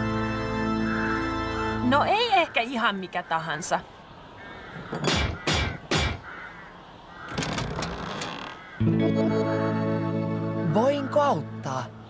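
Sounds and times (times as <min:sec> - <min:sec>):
heavy door creaking open: 0:07.2 - 0:08.8.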